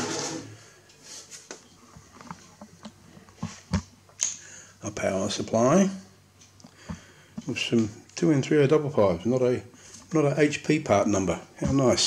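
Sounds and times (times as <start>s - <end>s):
sheet metal cover scraping: 0.0s - 0.6s.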